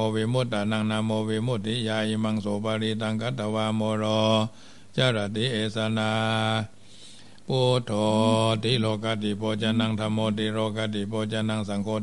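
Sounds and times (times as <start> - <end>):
man chanting: 0.0 - 6.8, 7.5 - 12.0.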